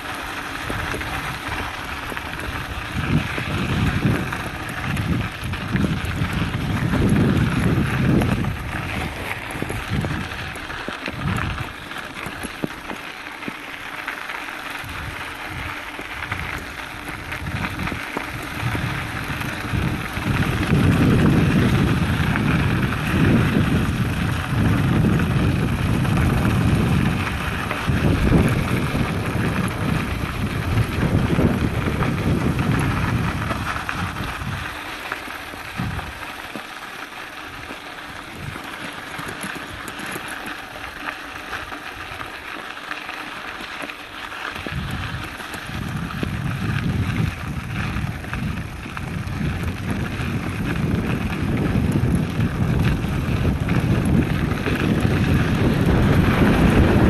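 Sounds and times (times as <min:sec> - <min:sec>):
wind on microphone: 0:00.0 - 0:13.0, 0:14.8 - 0:36.6, 0:37.4 - 0:42.2, 0:44.5 - 0:57.0
bike tyres on gravel: 0:00.0 - 0:57.0.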